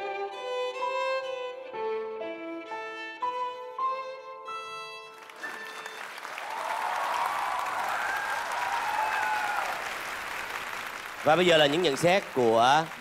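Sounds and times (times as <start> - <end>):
music: 0.0 - 6.6
audience applauding: 5.1 - 13.0.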